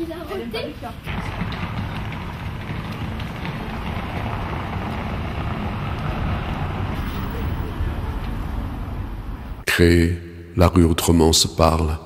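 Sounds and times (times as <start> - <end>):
street ambience: 0.0 - 10.6
wind rumbling on microphone: 1.1 - 9.6.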